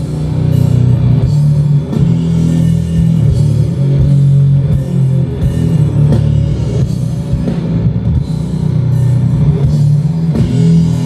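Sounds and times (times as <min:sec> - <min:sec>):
heavy rock band playing: 0:00.0 - 0:11.0.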